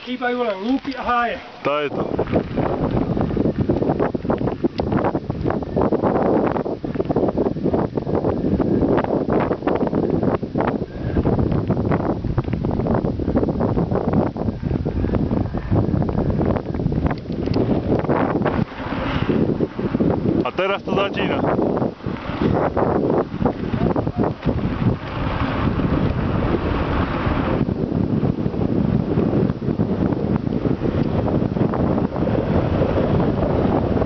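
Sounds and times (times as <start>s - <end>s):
wind rushing over microphone: 0.0s - 34.0s.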